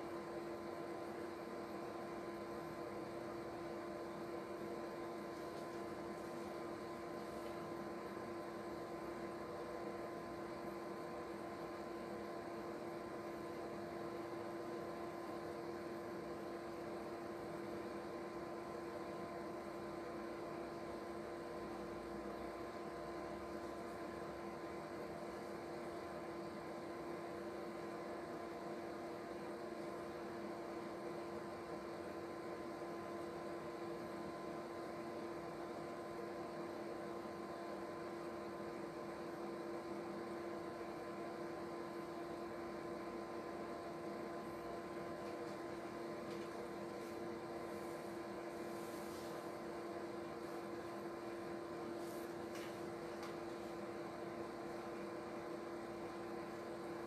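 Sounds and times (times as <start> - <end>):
steady background hum: 0.0 - 57.0.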